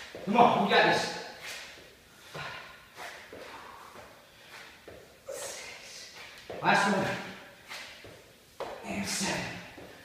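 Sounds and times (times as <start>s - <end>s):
man breathing hard: 2.1s - 6.0s
shoes scuffing on rubber mat: 7.6s - 8.8s.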